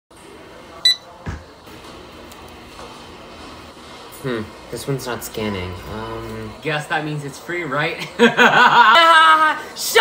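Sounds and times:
barcode scanner beep: 0.8 - 1.0.

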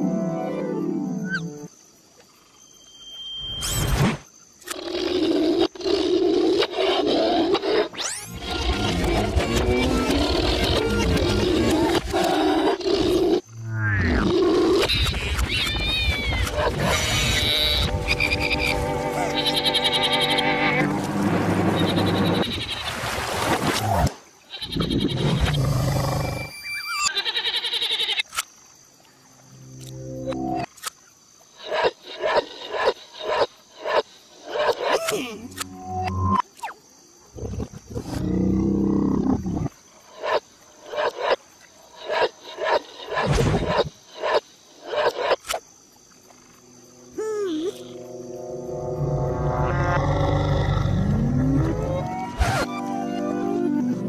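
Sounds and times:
creature roaring and growling: 49.7 - 51.9.

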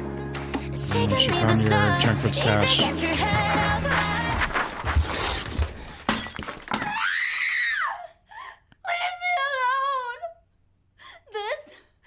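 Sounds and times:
glass breaking crash: 6.0 - 6.9.

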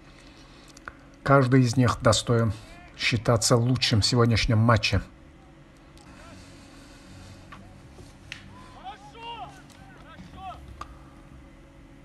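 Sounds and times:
low steady hum: 0.0 - 12.0
faint shouts of players: 2.6 - 3.0, 8.4 - 10.8.

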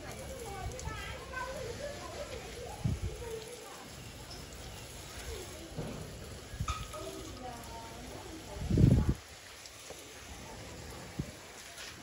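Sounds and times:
hose nozzle spraying water: 0.0 - 12.0.

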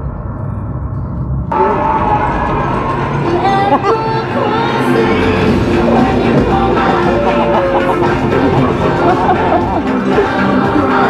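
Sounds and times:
low percussive rumble: 0.0 - 10.9
film soundtrack music: 0.0 - 11.0.

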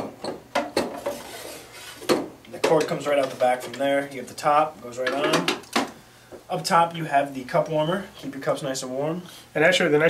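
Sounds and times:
plastic rubbing and scraping: 0.8 - 2.2.

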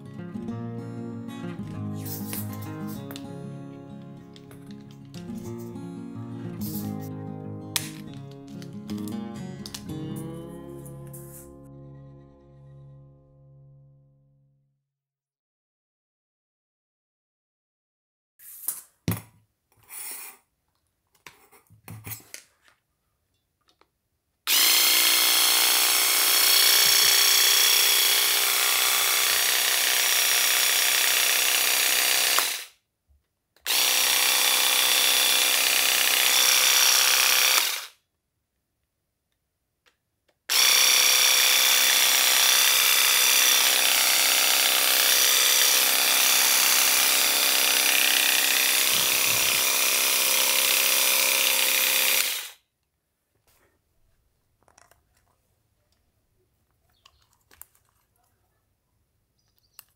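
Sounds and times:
electric weeder motor buzzing: 24.5 - 32.7, 33.7 - 38.0, 40.5 - 52.6.

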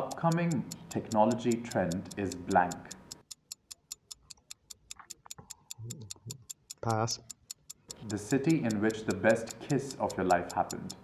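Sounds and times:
fast clock ticking: 0.0 - 11.0
man murmuring: 5.8 - 7.2.

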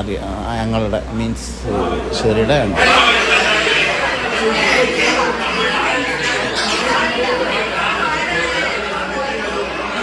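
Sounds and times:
overlapping indistinct conversation: 0.5 - 10.0.

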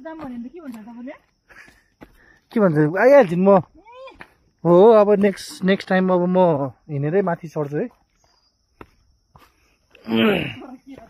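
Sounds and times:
footsteps on rocky trail: 0.0 - 11.0.

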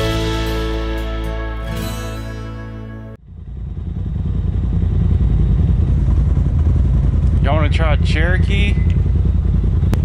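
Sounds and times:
music: 0.0 - 3.2
engine running low and rough: 0.0 - 10.0.

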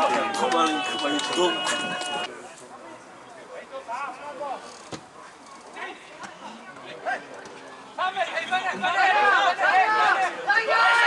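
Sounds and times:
distant players shouting: 0.0 - 2.3.

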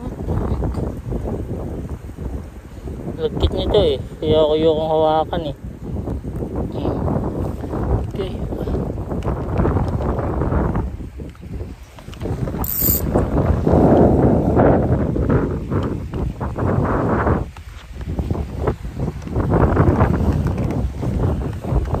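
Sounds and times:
wind buffeting microphone: 0.0 - 22.0
short high-pitched blip: 12.6 - 13.0.

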